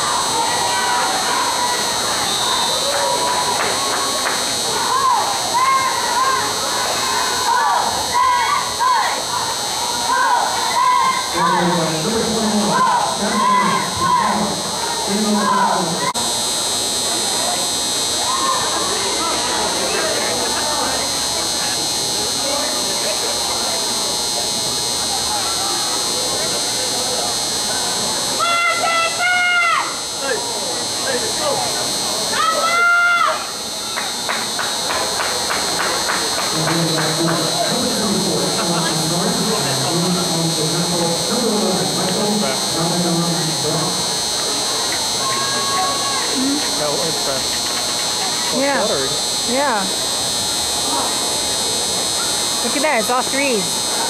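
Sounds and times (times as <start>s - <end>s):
loud drawn-out shouts: 0.0s - 11.7s, 12.6s - 16.2s, 28.3s - 30.0s, 32.3s - 33.6s, 43.9s - 46.4s
spectators chattering: 0.0s - 54.0s
steady high buzz: 0.0s - 54.0s
people clapping: 2.8s - 4.6s, 33.9s - 37.9s.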